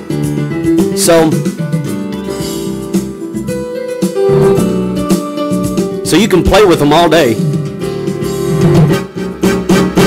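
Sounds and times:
electronic keyboard playing chords: 0.0s - 10.0s.

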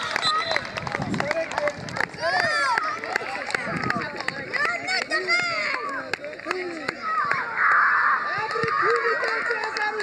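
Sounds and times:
people shouting and cheering: 0.0s - 10.0s.

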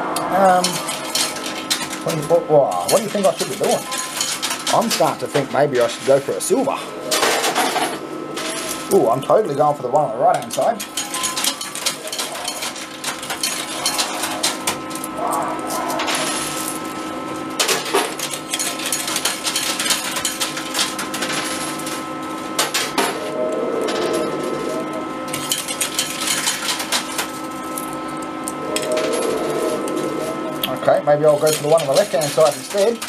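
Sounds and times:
electrical hum: 0.0s - 33.0s
coins clattering on metal: 2.8s - 5.1s, 10.5s - 15.0s, 17.6s - 22.0s, 31.3s - 33.0s.

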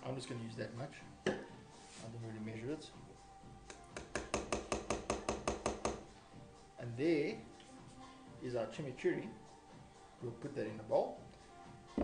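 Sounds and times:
spoon tapping glass jar: 3.9s - 6.0s.

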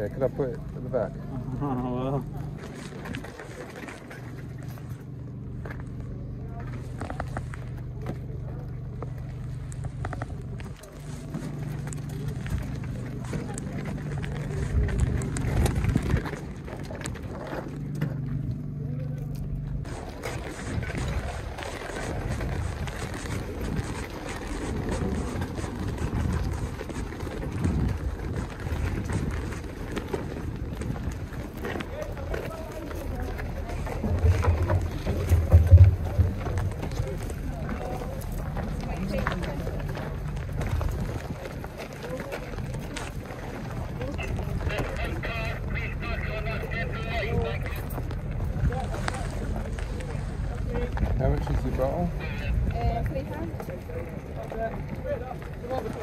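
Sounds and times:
distant crowd chatter: 0.0s - 56.0s.

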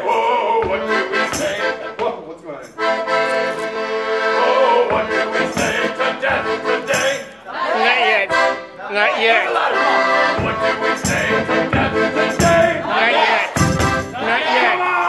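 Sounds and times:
accordion chords: 0.0s - 15.0s.

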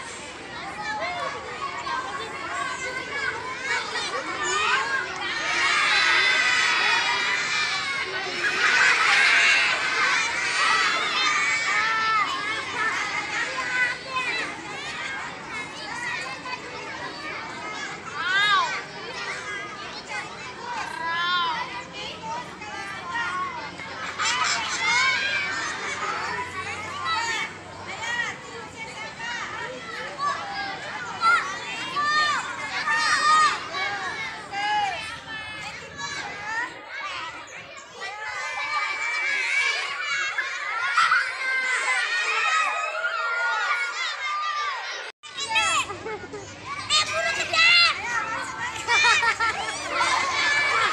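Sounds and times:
children calling and chattering: 0.0s - 50.9s
high children's calls: 0.0s - 50.9s.

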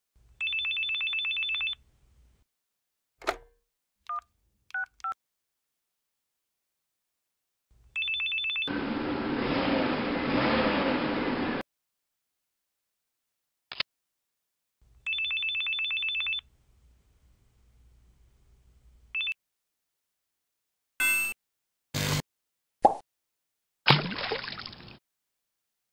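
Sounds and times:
cell phone ringing: 0.4s - 1.8s, 8.0s - 8.7s, 15.1s - 16.4s.

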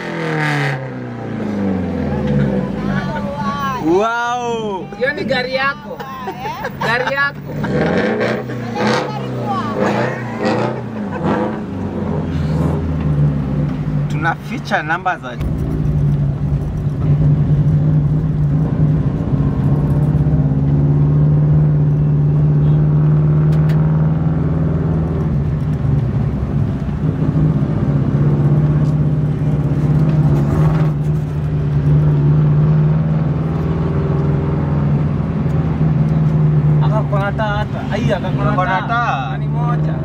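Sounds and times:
car engine droning: 0.0s - 40.0s.

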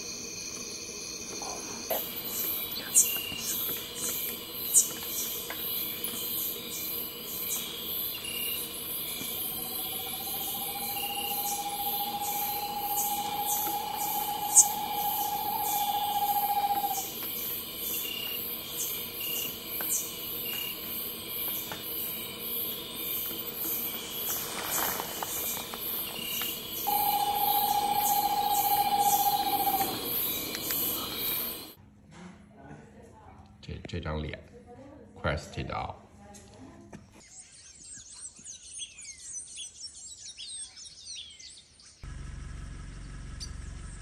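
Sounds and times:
night insects pulsing: 0.0s - 31.8s
screech-owl trilling: 2.0s - 21.1s, 21.9s - 31.8s.

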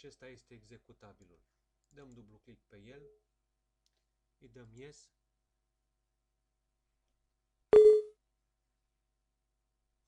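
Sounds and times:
computer alert beep: 7.8s - 8.1s.

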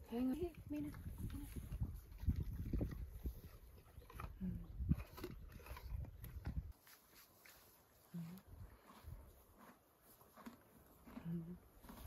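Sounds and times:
horse chewing an apple: 0.0s - 12.0s.

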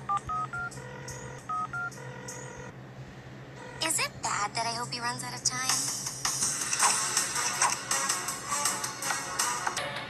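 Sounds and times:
keypad dialing beeps: 0.1s - 2.6s.

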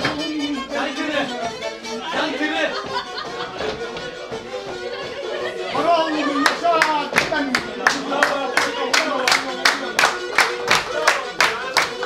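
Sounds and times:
people clapping in time: 6.2s - 12.0s.

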